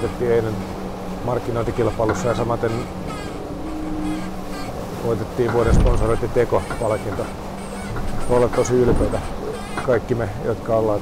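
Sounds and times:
low equipment hum: 0.0s - 11.0s
water rushing on hull: 0.0s - 11.0s.

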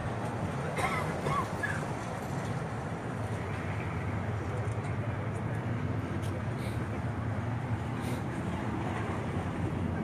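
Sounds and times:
low rumbling street noise: 0.0s - 10.0s
faint indistinct voices: 3.3s - 10.0s.

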